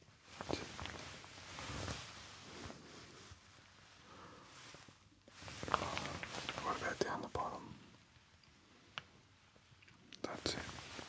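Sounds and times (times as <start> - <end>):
man whispering: 0.4 - 1.1, 5.6 - 7.9, 10.1 - 11.0.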